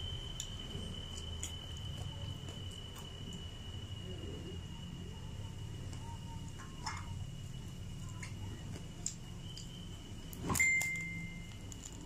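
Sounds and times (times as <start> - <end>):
thin steady high tone: 0.0 - 12.0.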